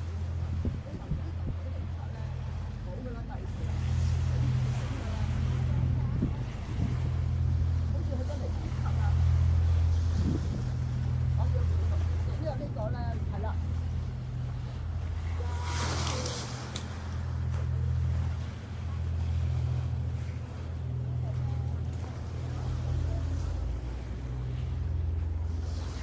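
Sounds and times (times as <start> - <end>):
low engine drone: 0.0 - 26.0
people talking in background: 0.0 - 26.0.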